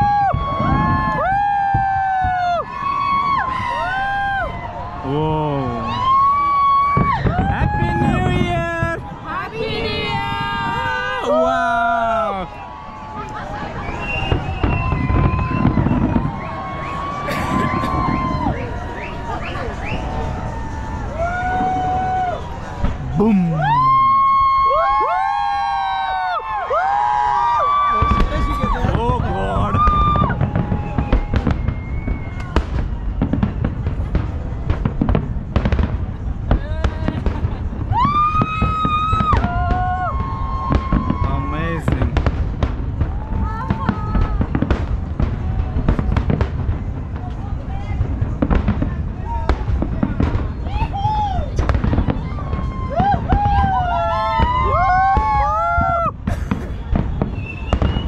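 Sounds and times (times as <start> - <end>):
fireworks booming and banging: 0.0 - 58.0.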